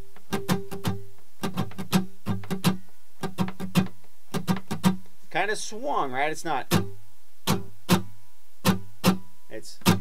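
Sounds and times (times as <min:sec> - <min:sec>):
acoustic guitar strumming: 0:00.2 - 0:10.0.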